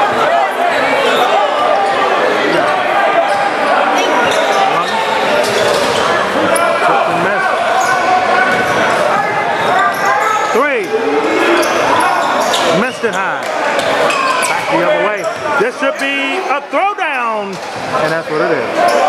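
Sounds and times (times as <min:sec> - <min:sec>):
chatter of players and spectators: 0:00.0 - 0:19.0
sneakers squeaking: 0:01.0 - 0:16.5, 0:17.4 - 0:19.0.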